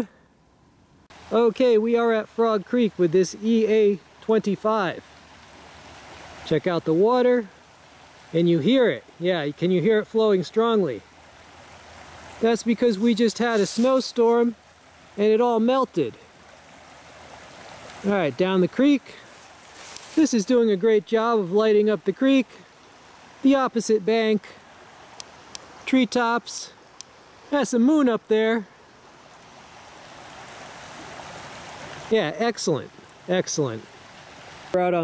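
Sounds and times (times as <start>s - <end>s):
creek water rushing: 1.0s - 35.0s.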